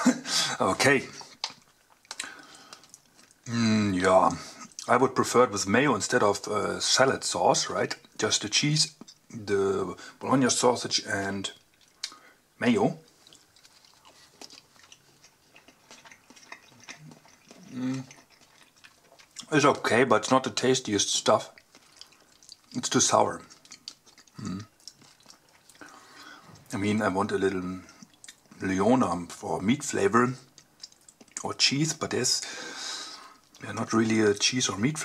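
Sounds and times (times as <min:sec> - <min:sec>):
faint chewing: 0:00.8 - 0:04.9, 0:08.9 - 0:09.4, 0:11.5 - 0:29.4, 0:30.4 - 0:35.0.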